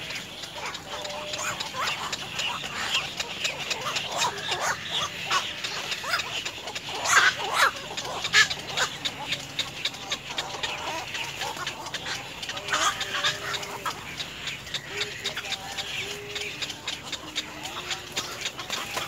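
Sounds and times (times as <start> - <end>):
birds calling and chirping: 0.0 - 19.0.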